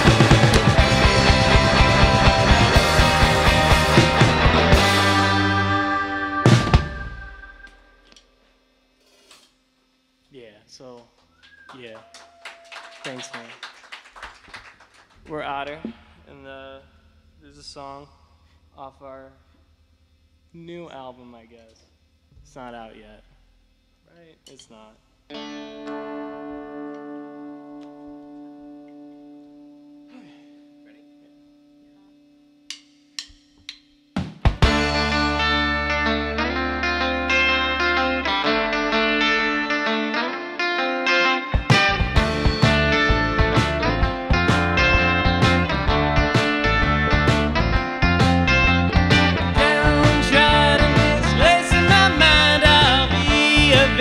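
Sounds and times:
heavy drum hits: 0.0s - 5.4s
rock band final chord ringing: 0.0s - 8.0s, 34.5s - 54.0s
person's voice: 15.2s - 16.8s, 49.6s - 54.0s.

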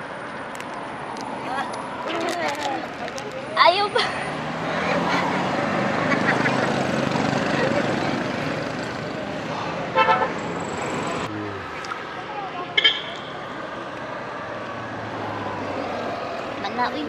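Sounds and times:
motorcycle passing: 1.4s - 17.0s
vehicle horn toot: 10.0s - 10.4s.

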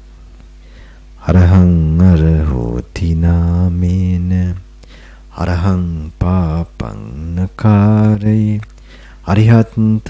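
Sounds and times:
man chanting: 1.2s - 4.7s, 5.3s - 10.0s.

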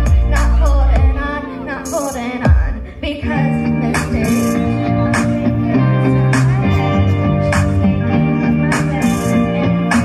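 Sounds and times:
heavy beat: 0.0s - 1.3s
karaoke backing track: 0.0s - 10.0s
girls singing into microphone: 0.1s - 10.0s.

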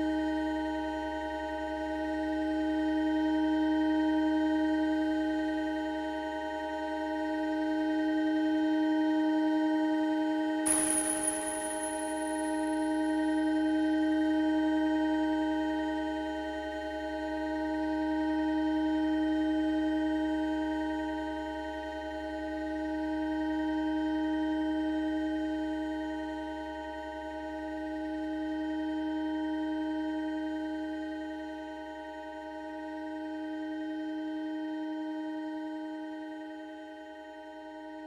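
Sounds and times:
low hum: 10.7s - 13.5s.

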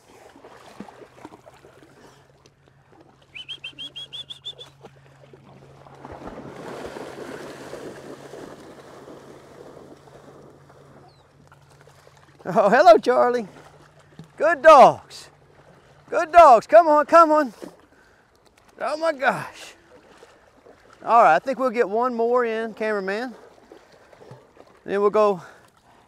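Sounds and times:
dogs splashing through water: 0.0s - 26.0s
bird chirping: 3.3s - 4.7s, 11.0s - 11.3s.

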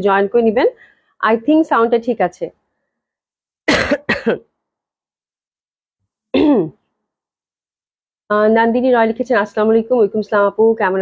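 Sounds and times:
woman clearing her throat: 3.7s - 4.5s, 6.4s - 6.8s.

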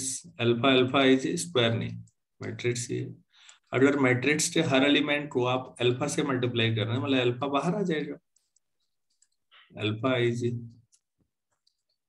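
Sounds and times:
man speaking: 0.0s - 8.3s, 9.7s - 10.9s.

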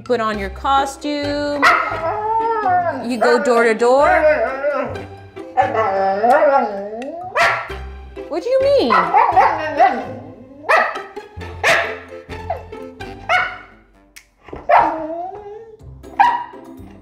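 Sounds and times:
husky howling woo calls: 1.6s - 5.0s, 5.6s - 7.5s, 14.7s - 16.4s.

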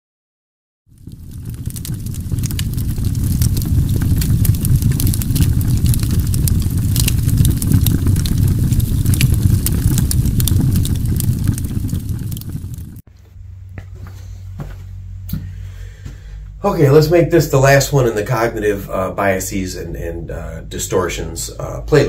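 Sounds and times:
low rumble with crackles: 0.9s - 22.0s.

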